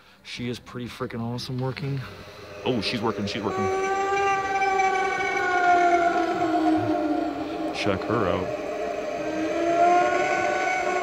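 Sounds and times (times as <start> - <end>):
long wail sliding down in pitch: 2.0 - 11.0.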